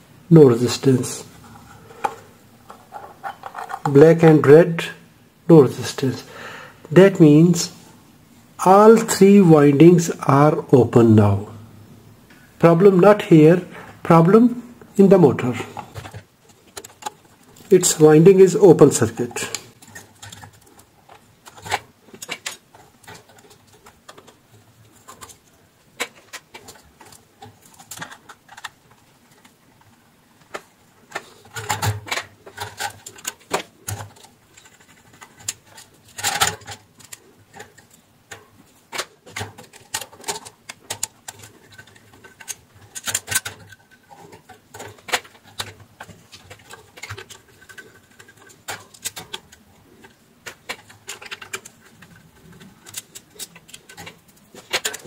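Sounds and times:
tools clicking and knocking on metal: 2.0 - 4.0, 19.4 - 55.0.

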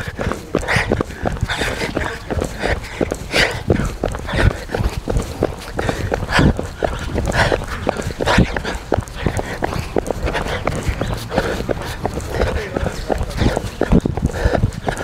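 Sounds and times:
hard breathing: 0.0 - 15.0
running footsteps on asphalt: 0.0 - 15.0.

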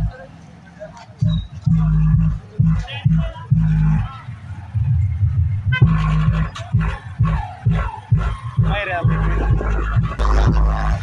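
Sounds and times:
bass-heavy dj music: 1.2 - 11.0
deep bass hits: 1.7 - 4.1, 4.7 - 11.0
vocal line: 9.2 - 11.0.

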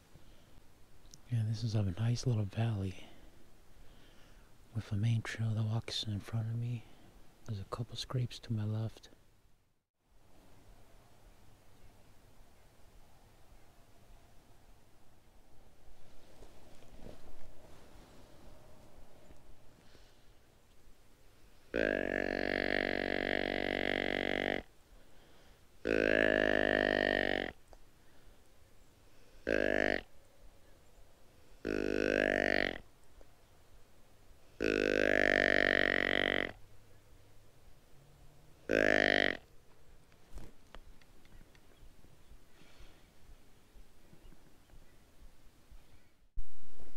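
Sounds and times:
deer call blown: 21.7 - 24.7, 25.8 - 27.6, 29.3 - 30.1, 31.5 - 32.8, 34.6 - 36.6, 38.7 - 39.4.

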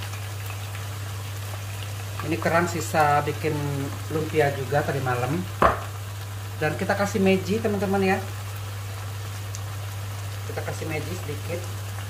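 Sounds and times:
food sizzling in frying pan: 0.0 - 12.0.

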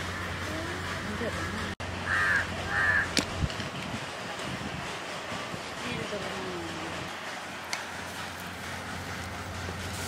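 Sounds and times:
crow cawing: 2.0 - 3.2.

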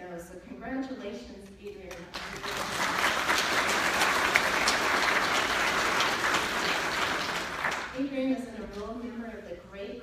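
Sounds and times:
audience applauding: 2.2 - 8.0.

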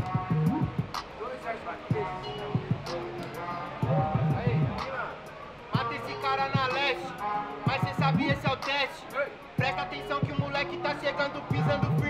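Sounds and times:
hip-hop beat from speaker: 0.0 - 12.0
man's voice over beat: 3.8 - 5.2, 5.8 - 12.0.

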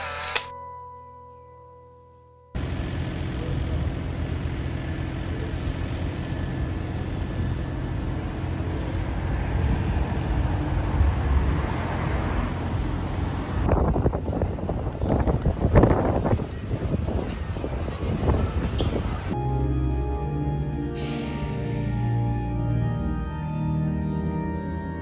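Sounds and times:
choppy street sound: 2.5 - 25.0
passing vehicles rumble: 2.6 - 19.4.

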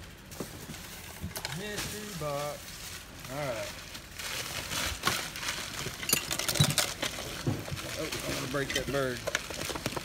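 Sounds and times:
ceramic objects clinking: 5.9 - 7.4.

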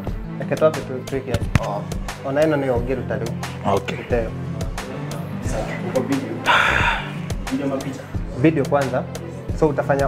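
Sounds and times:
background music with low beat: 0.0 - 10.0
person gasping: 6.4 - 7.3
person talking: 6.5 - 7.2.

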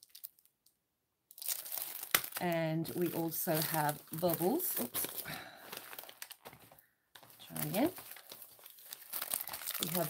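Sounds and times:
plastic packaging crinkling: 0.0 - 0.5, 1.3 - 10.0.

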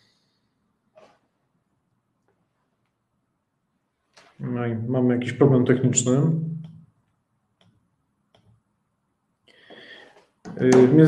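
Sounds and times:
man speaking: 4.3 - 6.6, 10.5 - 11.0
short in-breath: 9.5 - 10.2.

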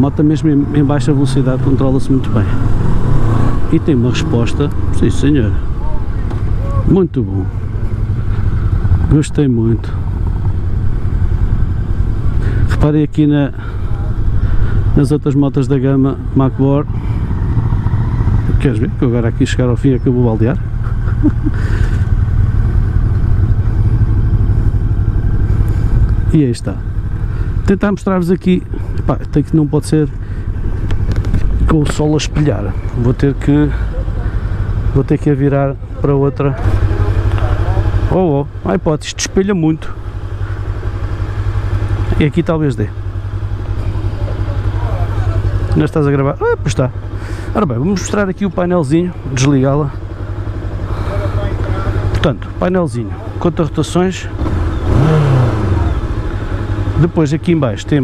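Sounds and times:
motorcycle engine rumbling at low revs: 0.0 - 58.0.

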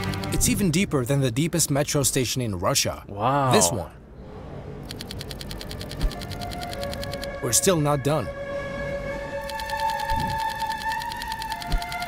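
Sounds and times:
rapid even ticking: 0.0 - 0.5, 4.8 - 7.4, 9.4 - 12.0.

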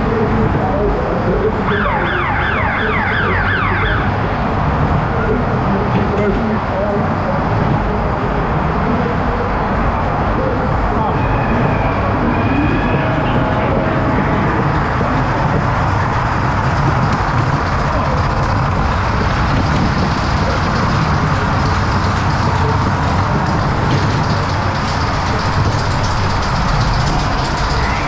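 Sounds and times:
ride car rolling along track: 0.0 - 28.0
brief high tone: 11.2 - 15.4.

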